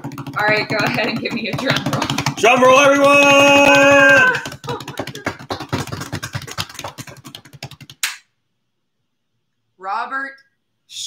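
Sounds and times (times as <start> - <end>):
hands drumming on a desk: 0.0 - 8.0.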